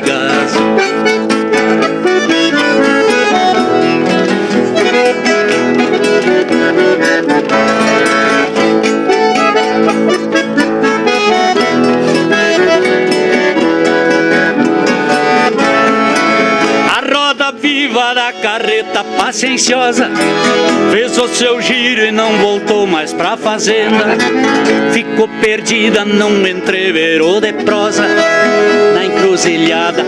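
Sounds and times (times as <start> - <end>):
acoustic guitars strumming: 0.0 - 30.0
bandoneon playing melody: 0.0 - 30.0.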